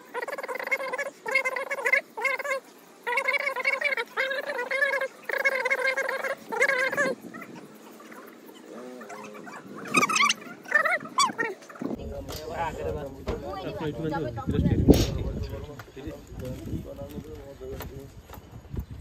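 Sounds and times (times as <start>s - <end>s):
quiet voices: 0.0s - 18.4s.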